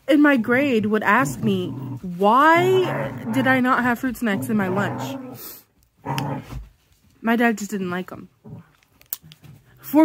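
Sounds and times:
woman speaking: 0:00.0 - 0:05.2, 0:07.2 - 0:08.4.

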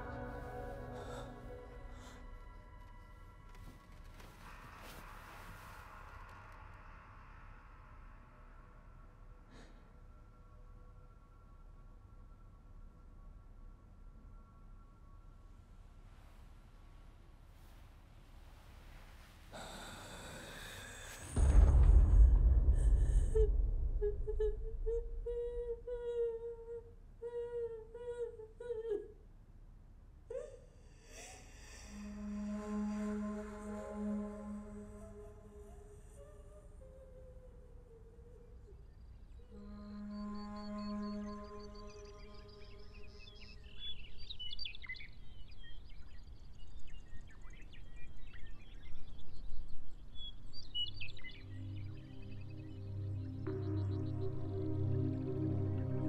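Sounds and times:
sustained music chord: 0:00.0 - 0:02.7, 0:51.5 - 0:56.0
low music tones: 0:00.0 - 0:16.2, 0:32.0 - 0:37.5, 0:39.3 - 0:43.7, 0:51.2 - 0:56.0
woman humming: 0:23.2 - 0:29.2, 0:30.3 - 0:43.1
songbirds chirping: 0:37.4 - 0:56.0.

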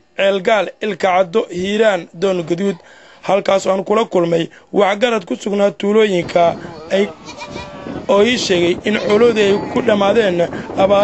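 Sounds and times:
livestock bleating: 0:06.6 - 0:08.0, 0:08.9 - 0:10.1.

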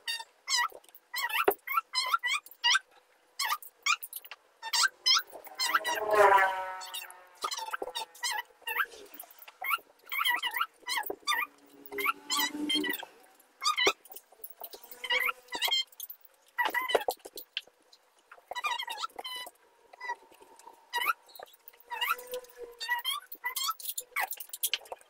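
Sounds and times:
marker squeaking on whiteboard: 0:00.0 - 0:17.6, 0:18.3 - 0:25.0.

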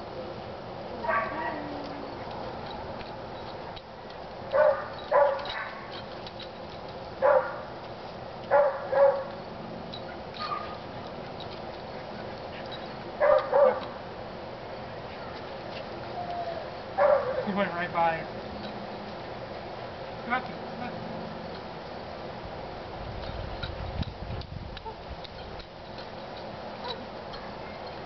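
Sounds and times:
small dog barking sharply: 0:04.6 - 0:05.8, 0:07.2 - 0:07.6, 0:08.5 - 0:09.3, 0:13.2 - 0:13.8.

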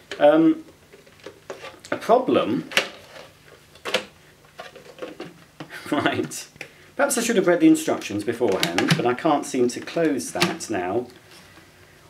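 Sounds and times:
plastic bin taps and rattles: 0:08.4 - 0:10.7.

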